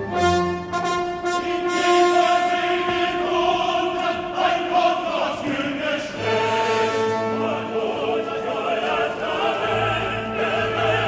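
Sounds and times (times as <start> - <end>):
opera chorus singing: 1.1 - 11.0.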